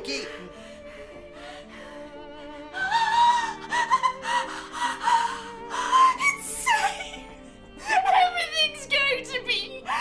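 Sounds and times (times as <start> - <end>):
background music: 0.0 - 10.0
woman wailing and sobbing: 2.7 - 8.8.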